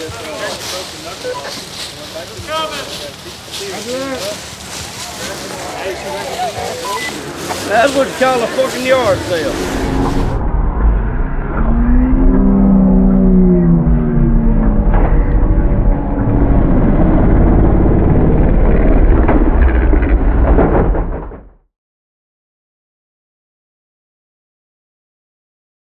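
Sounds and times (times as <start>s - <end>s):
engine revving hard: 7.2s - 19.7s.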